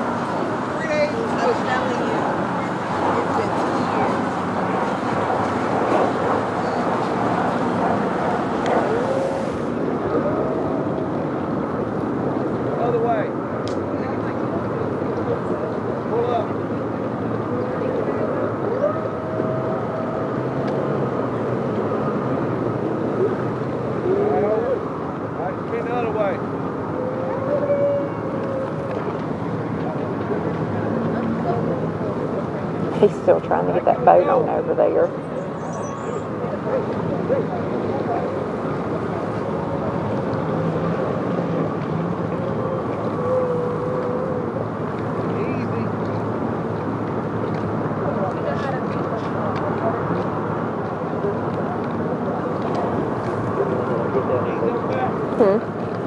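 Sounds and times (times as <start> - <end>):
indistinct voices: 31.4 - 35.3.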